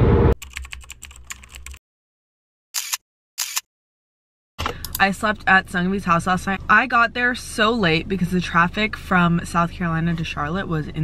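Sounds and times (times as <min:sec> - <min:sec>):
keyboard typing clicks: 0:00.4 - 0:01.8.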